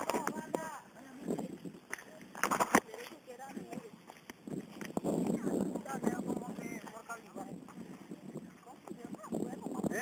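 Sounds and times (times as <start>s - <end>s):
group talking and calling: 0.0s - 10.0s.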